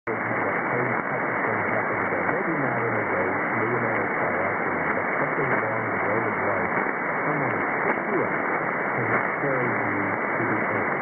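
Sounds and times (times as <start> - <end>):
radio hiss and static: 0.0 - 11.0
faint radio voice: 0.1 - 11.0.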